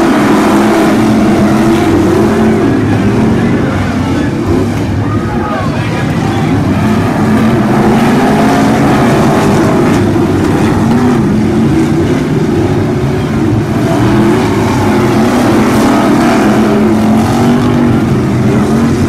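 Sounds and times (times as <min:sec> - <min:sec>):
race car engines accelerating: 0:00.0 - 0:19.0.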